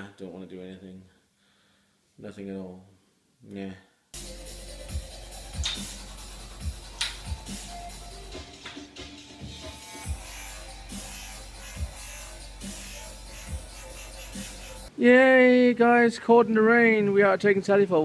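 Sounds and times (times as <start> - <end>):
music with low beat: 4.2 - 14.9.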